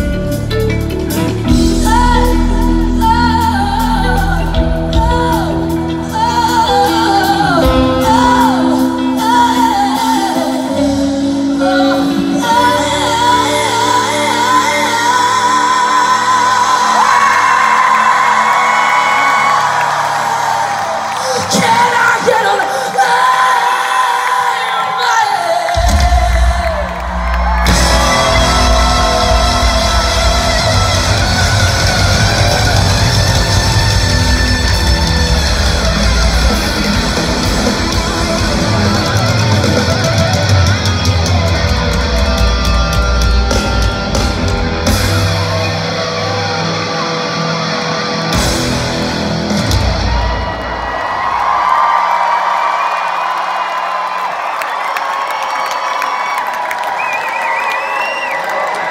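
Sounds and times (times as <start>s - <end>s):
hard rock band playing live: 0.0s - 19.6s, 25.8s - 51.2s
crowd cheering and whooping: 1.1s - 58.9s
wavering whistle from crowd: 56.8s - 58.7s.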